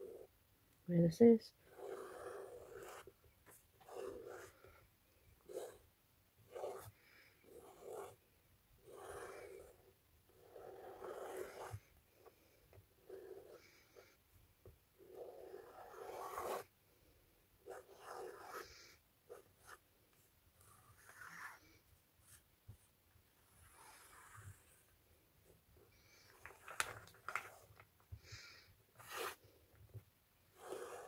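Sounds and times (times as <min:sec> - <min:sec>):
marker scratching on paper: 0:01.6 - 0:04.8, 0:05.4 - 0:08.2, 0:08.8 - 0:11.9, 0:15.1 - 0:16.7, 0:17.6 - 0:19.8, 0:20.6 - 0:22.5, 0:23.4 - 0:24.9, 0:29.0 - 0:29.4, 0:30.5 - 0:31.0.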